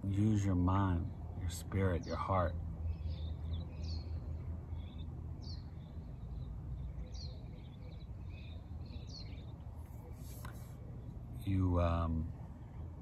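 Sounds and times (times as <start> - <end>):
birds chirping: 0.0 - 13.0.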